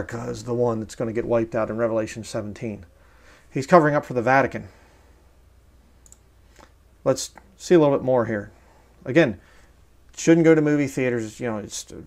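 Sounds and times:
low room hum: 0:00.0 - 0:12.0
computer mouse clicking: 0:06.0 - 0:06.8.

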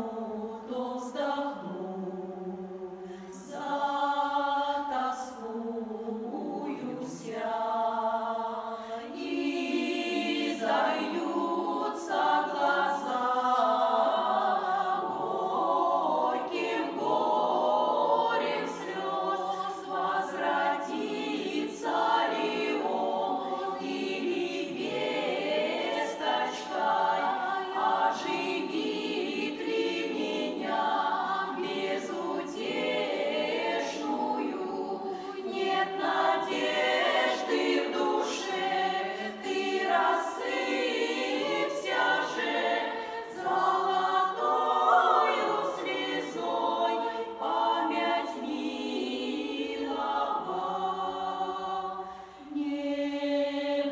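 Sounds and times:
women's choir singing in harmony: 0:00.0 - 0:53.9.

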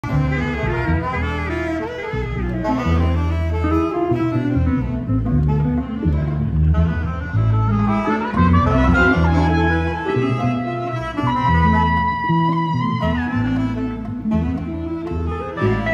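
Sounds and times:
latin band with horn section: 0:00.0 - 0:15.9
saxophone lines: 0:00.0 - 0:15.9
strong bass line: 0:00.0 - 0:15.9.

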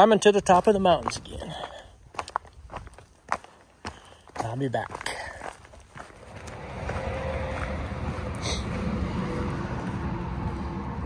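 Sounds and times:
tyres on road: 0:00.0 - 0:11.0
vehicle engine rumble: 0:05.0 - 0:11.0.

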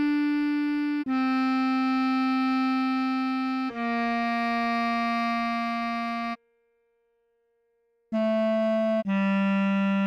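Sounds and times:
bass clarinet note: 0:08.2 - 0:10.0.

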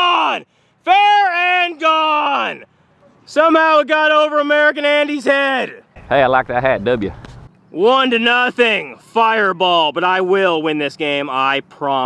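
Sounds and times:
man yelling long shouts: 0:00.0 - 0:02.6.

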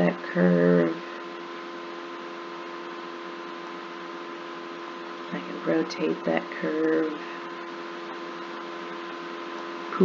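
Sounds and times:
computer hum: 0:00.0 - 0:10.0.

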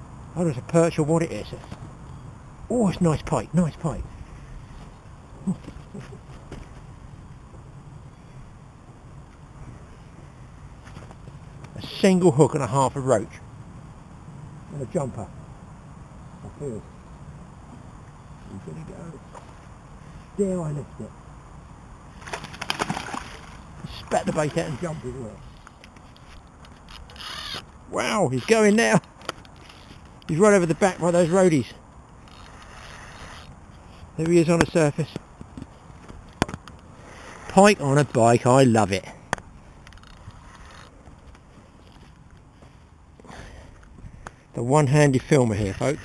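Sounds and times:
fish splashing in water: 0:22.2 - 0:23.6
fishing rod handling rustle: 0:22.2 - 0:31.5, 0:32.2 - 0:34.6, 0:39.4 - 0:43.0.

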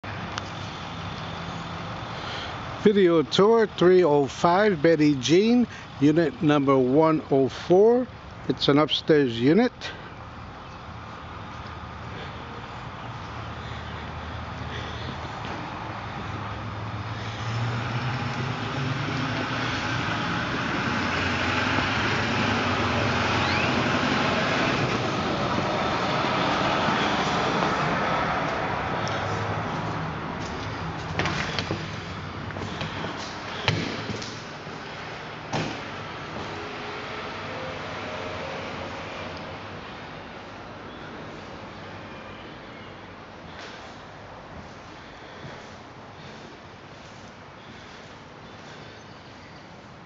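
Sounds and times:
distant road traffic hum: 0:00.0 - 0:50.0.

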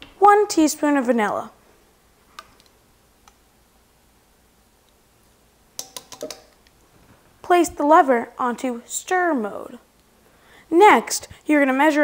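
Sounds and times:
bottle handling clicks: 0:05.8 - 0:06.6.

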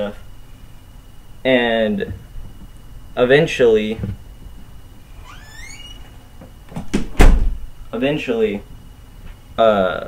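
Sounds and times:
short high squeak: 0:05.2 - 0:06.1.

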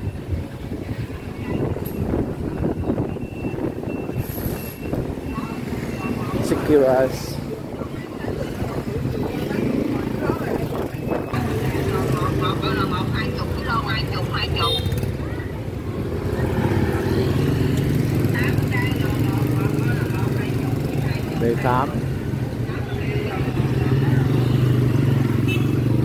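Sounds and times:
people's voices in background: 0:00.0 - 0:26.0
motor scooters riding past: 0:05.4 - 0:26.0.

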